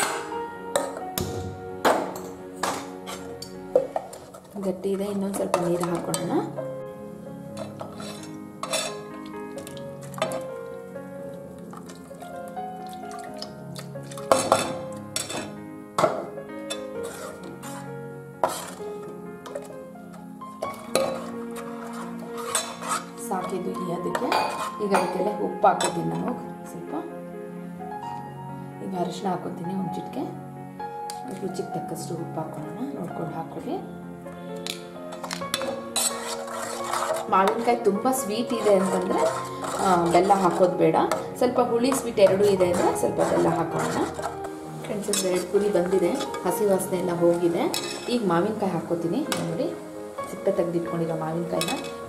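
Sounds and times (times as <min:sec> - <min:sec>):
ladle scraping metal pot: 0:00.0 - 0:01.1, 0:02.1 - 0:06.6, 0:07.4 - 0:10.7, 0:11.5 - 0:26.3, 0:34.6 - 0:48.3, 0:51.5 - 0:52.0
background music: 0:00.0 - 0:52.0
steel clinking against pot: 0:07.6 - 0:09.0, 0:22.4 - 0:23.0, 0:24.3 - 0:25.2, 0:35.1 - 0:41.3, 0:47.7 - 0:48.2
water pouring into a pot: 0:11.8 - 0:14.4.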